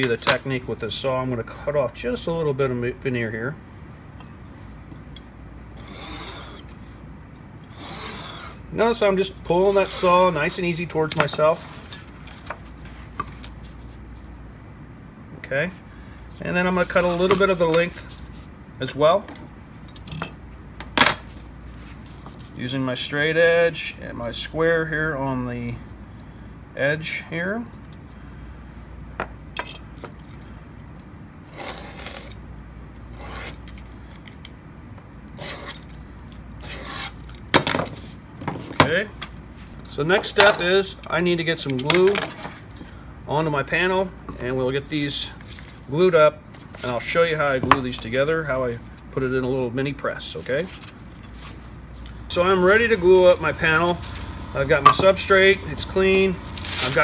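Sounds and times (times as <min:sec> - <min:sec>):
low steady hum: 0:00.0 - 0:57.0
knife scraping along metal square: 0:05.8 - 0:06.7, 0:07.7 - 0:08.6, 0:31.5 - 0:32.4, 0:33.1 - 0:33.8, 0:35.4 - 0:35.9, 0:36.6 - 0:37.3
metal tools clattering on bench: 0:19.9 - 0:20.4, 0:29.6 - 0:29.9.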